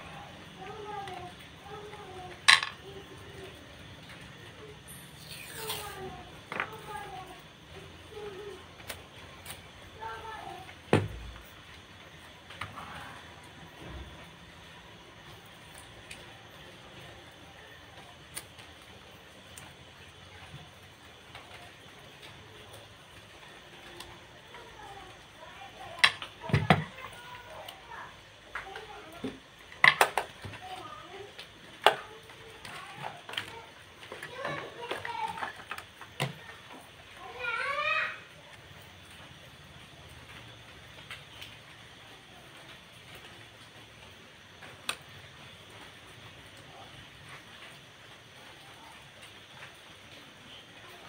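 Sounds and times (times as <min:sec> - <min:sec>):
faint voices: 0:00.0 - 0:29.8.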